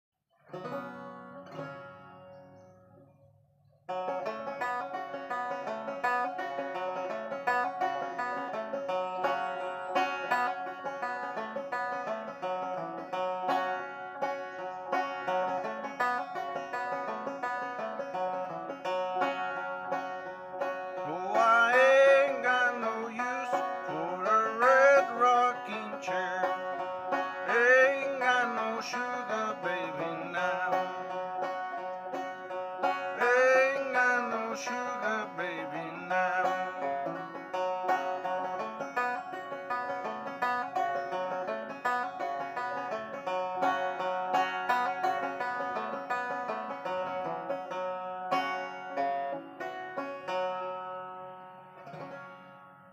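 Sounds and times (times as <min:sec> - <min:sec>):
banjo playing: 0:00.4 - 0:52.9
man singing: 0:21.0 - 0:26.8, 0:27.4 - 0:31.2, 0:33.0 - 0:36.9.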